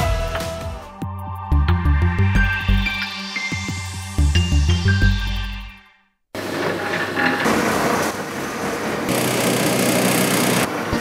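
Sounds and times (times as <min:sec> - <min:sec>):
dough machinery running: 0:06.4 - 0:11.0.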